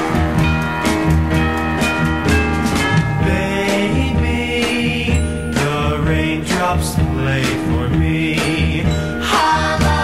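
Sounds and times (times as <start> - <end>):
pop band playing: 0.0 - 10.0
person singing: 3.2 - 10.0.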